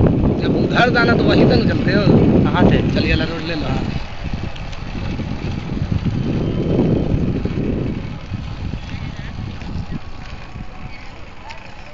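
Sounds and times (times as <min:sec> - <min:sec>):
tyres on paved road: 0:00.0 - 0:11.9
vehicle engine rumble: 0:00.0 - 0:11.9.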